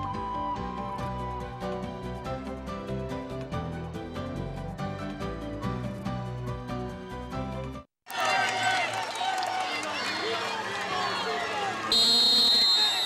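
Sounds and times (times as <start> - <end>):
arena crowd chattering: 8.1 - 13.0
high steady whistle or horn: 11.9 - 13.0.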